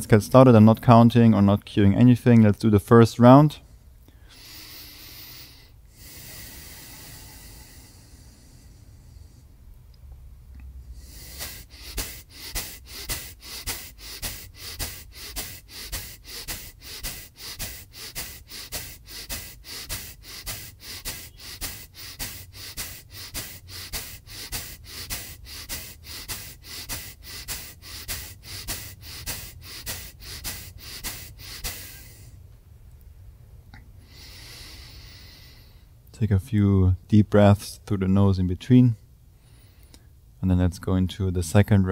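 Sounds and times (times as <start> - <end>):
forceful nasal exhalations: 4.1 - 9.7, 10.6 - 32.5, 33.8 - 36.0.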